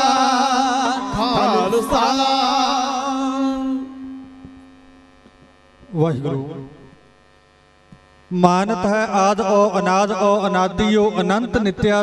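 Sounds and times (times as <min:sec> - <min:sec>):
mains hum: 0:00.0 - 0:12.0
man speaking: 0:01.2 - 0:02.3, 0:05.9 - 0:06.8.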